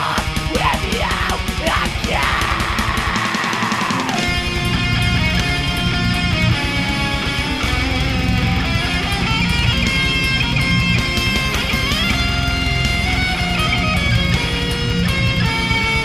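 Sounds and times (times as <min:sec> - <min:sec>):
distorted electric guitar riffing: 0:00.0 - 0:16.0
fast drums: 0:00.0 - 0:16.0.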